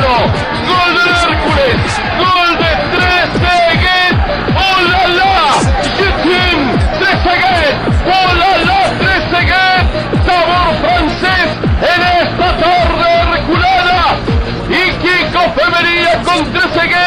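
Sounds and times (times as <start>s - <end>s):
kick drum beat: 0.0s - 14.6s
electronic dance music: 0.0s - 17.0s.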